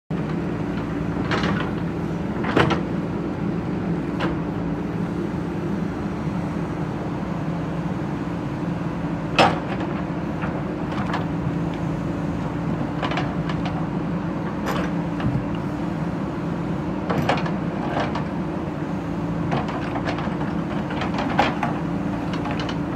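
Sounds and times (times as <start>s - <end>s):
diesel engine running: 0.1s - 22.9s.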